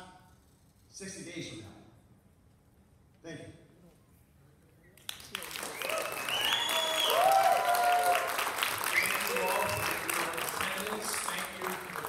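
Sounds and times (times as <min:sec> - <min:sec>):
audience applauding: 0:05.1 - 0:12.0.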